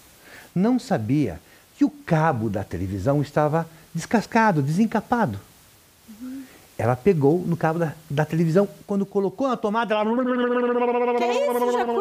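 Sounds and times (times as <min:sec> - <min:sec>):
man's long vocal cry: 0:10.1 - 0:12.0.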